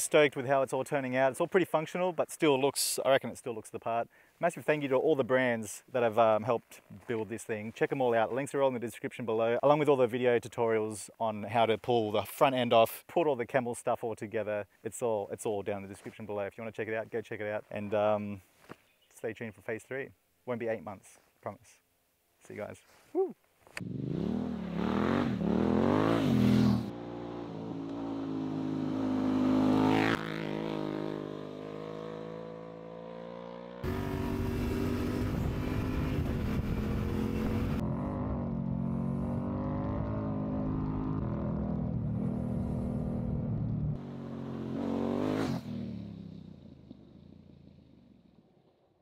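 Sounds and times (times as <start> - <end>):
motorcycle engine revving: 23.8 - 48.6
wind rush on microphone: 35.0 - 37.8.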